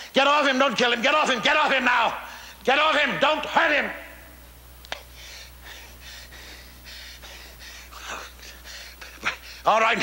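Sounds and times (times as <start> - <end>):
man gasping for breath: 5.0 - 9.7.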